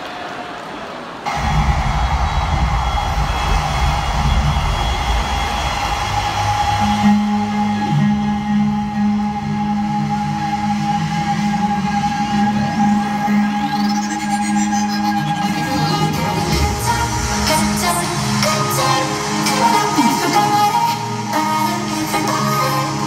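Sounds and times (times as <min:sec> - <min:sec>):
loud live concert music: 0:01.3 - 0:23.0
steady high tone: 0:01.3 - 0:23.0.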